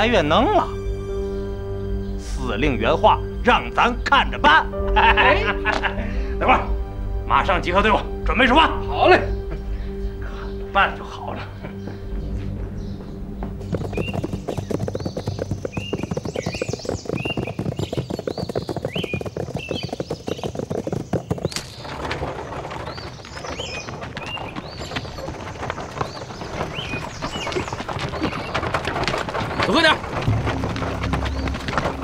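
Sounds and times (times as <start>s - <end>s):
birds chirping: 0.0s - 32.0s
horses galloping hoofbeats: 9.4s - 32.0s.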